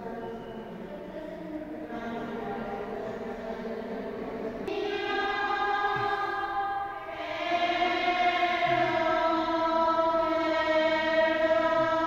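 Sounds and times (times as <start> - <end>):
slow church music chords: 0.0 - 12.0.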